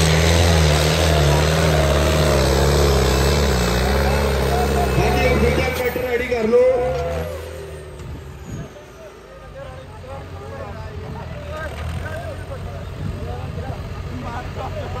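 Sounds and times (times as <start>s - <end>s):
diesel tractor engine under load: 0.0s - 15.0s
men calling out: 3.8s - 7.7s.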